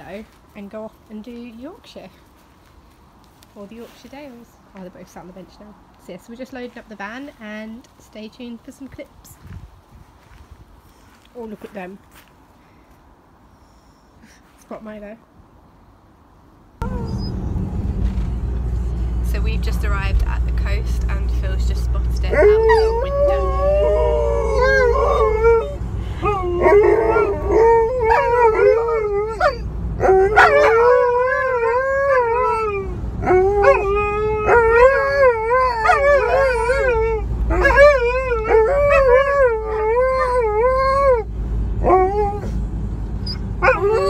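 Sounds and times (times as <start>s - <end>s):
dog howling: 22.3s - 42.6s, 43.3s - 44.0s.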